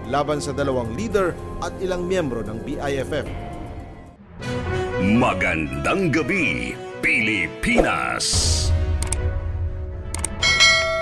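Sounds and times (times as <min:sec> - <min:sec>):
short clicks: 0:09.0 - 0:09.2
bright bell chime: 0:10.4 - 0:11.0.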